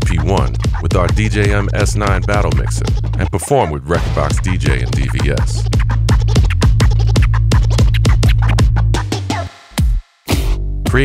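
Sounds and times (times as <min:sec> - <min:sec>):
electronic beat with heavy bass: 0:00.0 - 0:11.0
turntable scratching: 0:00.0 - 0:11.0.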